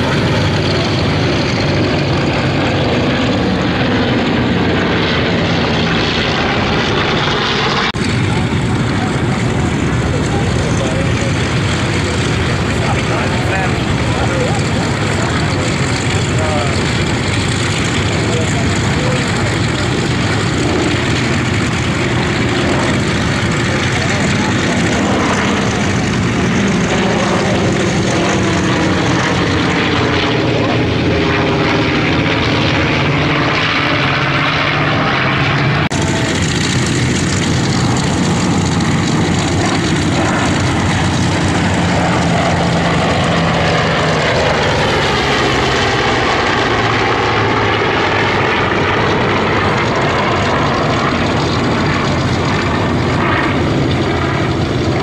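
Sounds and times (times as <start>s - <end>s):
propeller bomber droning: 0.0s - 55.0s
propeller fighters passing: 0.0s - 55.0s.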